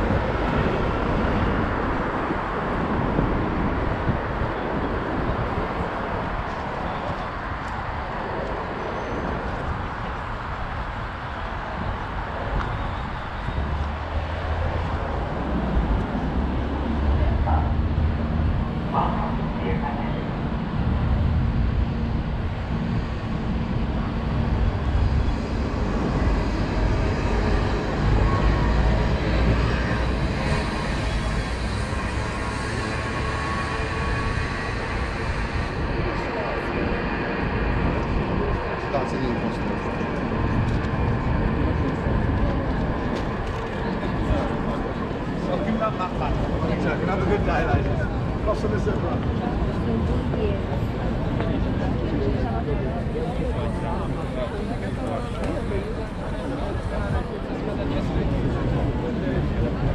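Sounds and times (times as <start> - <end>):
people chattering: 0.0 - 59.9
road traffic: 0.0 - 59.9.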